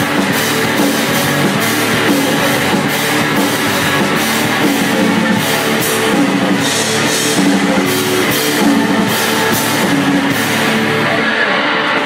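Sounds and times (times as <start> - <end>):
distorted electric guitar: 0.0 - 12.0
drum kit with crashing cymbals: 0.0 - 12.0.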